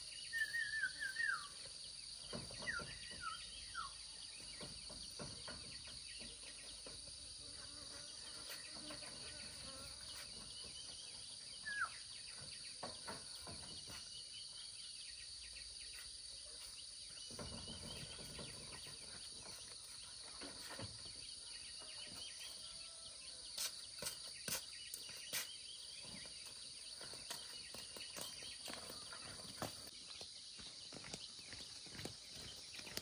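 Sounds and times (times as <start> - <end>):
insects chirring: 0.0 - 33.0.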